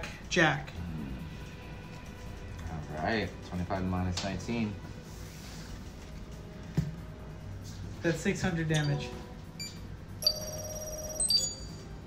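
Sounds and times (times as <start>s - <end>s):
bell-like electronic chime: 8.8s - 11.9s.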